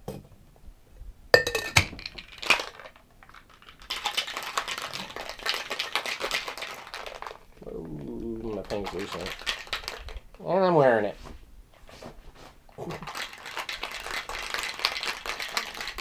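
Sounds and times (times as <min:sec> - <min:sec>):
ice rattling in cocktail shaker: 0:01.4 - 0:07.5, 0:08.4 - 0:10.4, 0:12.9 - 0:16.0.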